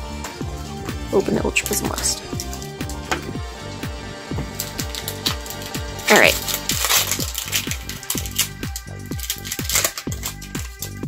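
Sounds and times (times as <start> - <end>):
background music with drum beat: 0.0 - 11.0
trading cards clicking: 4.5 - 11.0.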